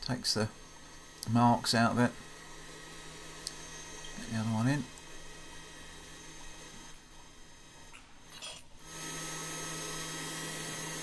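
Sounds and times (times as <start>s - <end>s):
forge air blower humming: 0.0s - 11.0s.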